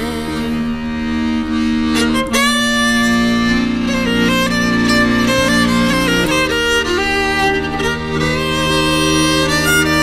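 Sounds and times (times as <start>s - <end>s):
button accordion playing chords: 0.0s - 10.0s
fiddle: 0.0s - 10.0s.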